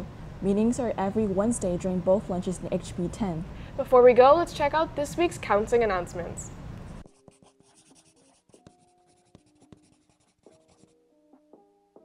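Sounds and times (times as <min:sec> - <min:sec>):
pen scratching on paper: 0:06.9 - 0:11.0.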